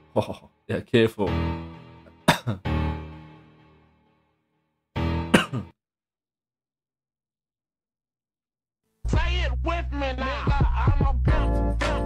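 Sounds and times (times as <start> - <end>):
man clearing his throat: 2.2 - 2.7, 5.3 - 5.8.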